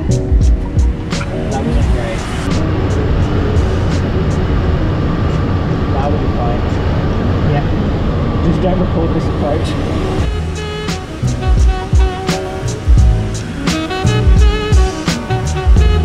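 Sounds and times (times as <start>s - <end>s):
air rushing around canopy: 0.0s - 16.0s.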